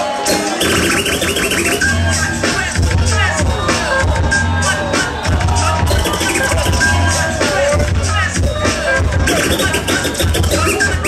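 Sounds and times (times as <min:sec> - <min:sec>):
hip-hop beat: 0:00.1 - 0:11.0
record scratching: 0:09.3 - 0:11.0.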